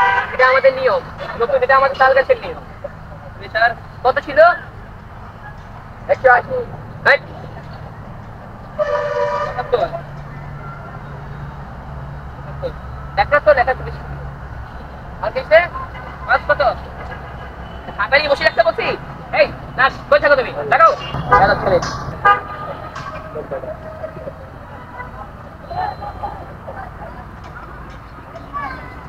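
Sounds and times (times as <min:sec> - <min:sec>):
vehicle horn honk: 0:00.0 - 0:00.7, 0:08.8 - 0:09.8, 0:20.9 - 0:23.3
passing vehicle rumble: 0:00.0 - 0:29.0
people talking: 0:17.9 - 0:29.0.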